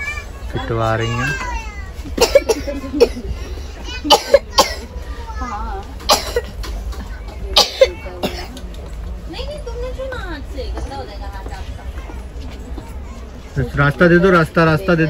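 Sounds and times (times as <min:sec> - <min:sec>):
quiet chatter: 0:00.0 - 0:15.0
person coughing: 0:02.2 - 0:03.3.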